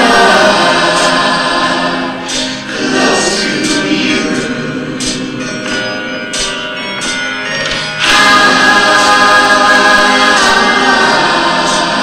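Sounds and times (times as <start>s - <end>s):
crowd singing together: 0.0s - 6.2s, 7.7s - 12.0s.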